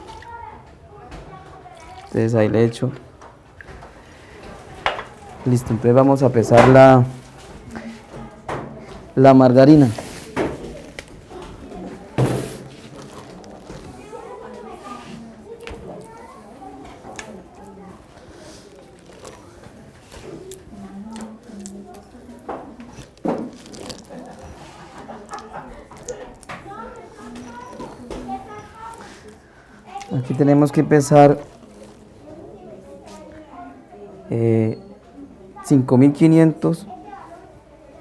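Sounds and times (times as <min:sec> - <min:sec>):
margarine squishing into plastic bowl: 0:09.9 - 0:29.4, 0:30.0 - 0:32.4
thud in bowl: 0:12.2 - 0:12.7.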